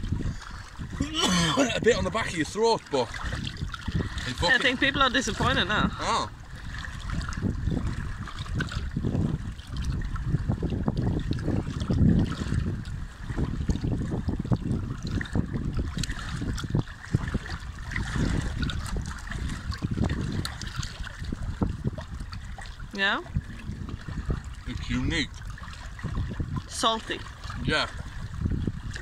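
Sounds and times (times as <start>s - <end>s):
water washing: 0.0s - 9.0s, 15.0s - 29.0s
wind rumbling on microphone: 0.0s - 29.0s.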